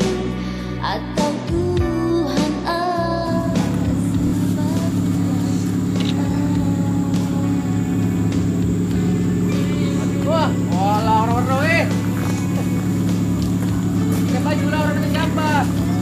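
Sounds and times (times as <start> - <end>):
vehicle engine idling: 2.8 - 16.0
people's voices: 3.3 - 16.0.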